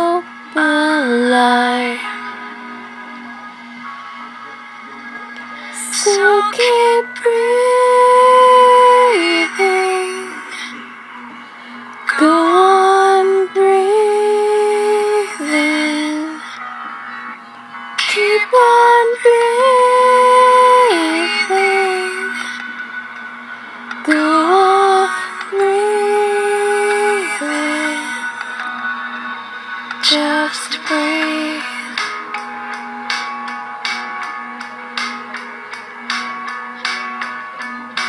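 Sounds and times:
sustained backing tone: 0:00.0 - 0:38.0
person singing long notes: 0:05.6 - 0:10.8, 0:18.1 - 0:22.6, 0:24.1 - 0:28.4.

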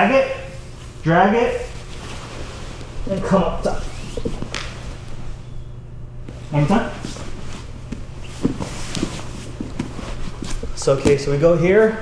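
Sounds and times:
steady low hum: 0:00.0 - 0:12.0
shuffling on a mat: 0:00.5 - 0:12.0.

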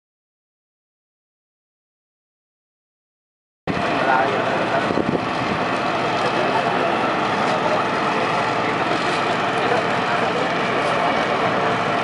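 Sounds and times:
vehicle engines running: 0:03.7 - 0:12.0
people's voices: 0:03.8 - 0:12.0.

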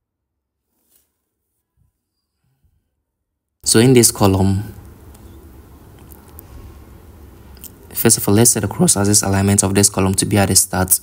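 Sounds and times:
low steady background hum: 0:01.6 - 0:11.0.

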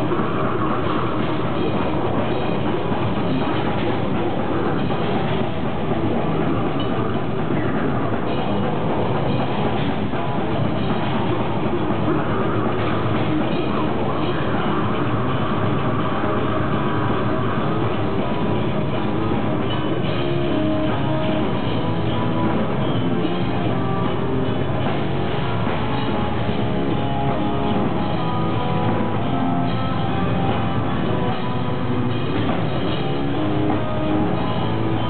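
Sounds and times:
death metal band playing live: 0:00.0 - 0:35.0
distorted guitars: 0:00.0 - 0:35.0
fast drumming: 0:00.0 - 0:35.0.

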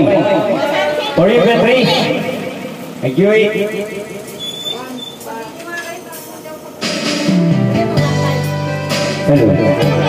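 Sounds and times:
karaoke backing track: 0:00.0 - 0:10.0
steady background noise: 0:00.0 - 0:10.0.

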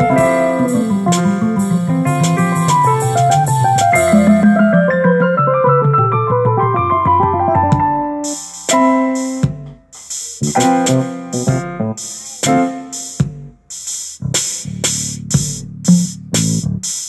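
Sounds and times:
high-pitched electronic percussion: 0:00.0 - 0:04.9
jazzy keyboard piano piece: 0:00.0 - 0:13.3.

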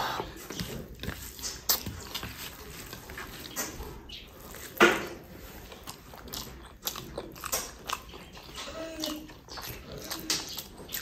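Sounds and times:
mouth eating noises: 0:00.0 - 0:11.0.

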